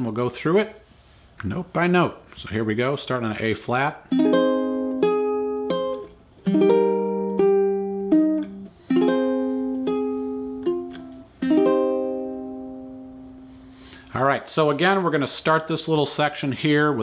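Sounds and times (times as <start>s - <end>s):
ukulele playing slow chords: 4.1s - 14.0s.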